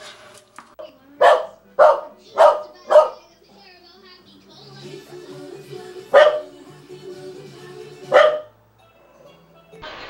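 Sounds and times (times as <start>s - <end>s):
small dog barking: 1.2s - 3.2s, 6.1s - 6.5s, 8.1s - 8.5s.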